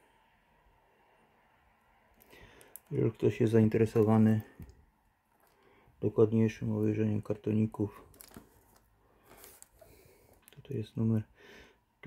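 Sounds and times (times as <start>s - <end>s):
cardboard box rustle: 8.1s - 9.8s.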